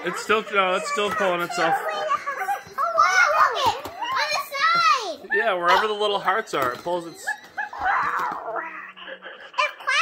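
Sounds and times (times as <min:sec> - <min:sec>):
squeaky voice-like sounds: 0:05.3 - 0:10.0.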